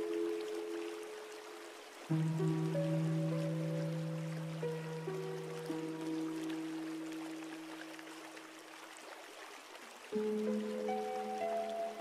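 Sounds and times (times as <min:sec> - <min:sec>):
rushing waterfall: 0:00.0 - 0:12.0
soft music: 0:00.0 - 0:12.0.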